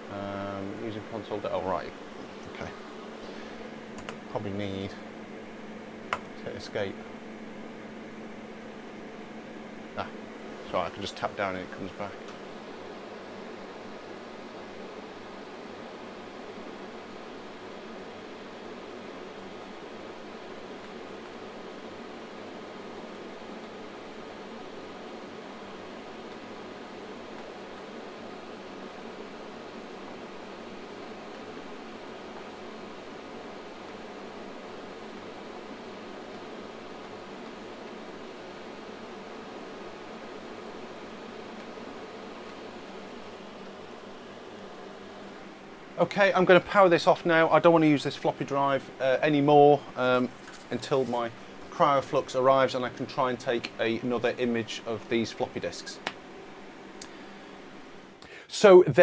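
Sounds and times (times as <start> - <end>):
cooling fan whir and hiss: 0.0 - 59.0
faint steady hum: 0.0 - 59.0.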